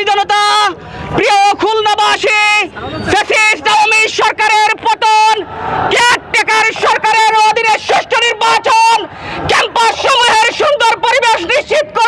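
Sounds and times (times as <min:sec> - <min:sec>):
man shouting through megaphone: 0:00.0 - 0:12.0.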